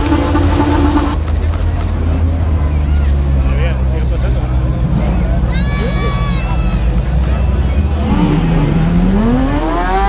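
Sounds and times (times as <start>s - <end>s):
car and bus engines droning: 0.0s - 10.0s
crowd voices: 0.0s - 10.0s.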